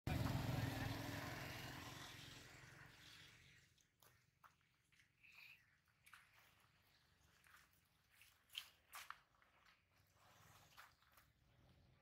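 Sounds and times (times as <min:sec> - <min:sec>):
motor vehicle rumble: 0:00.1 - 0:03.5.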